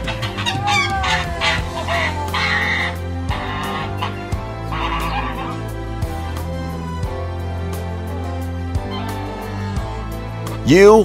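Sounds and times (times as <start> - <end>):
goose honking: 0.0 - 6.4
background music: 0.0 - 11.0.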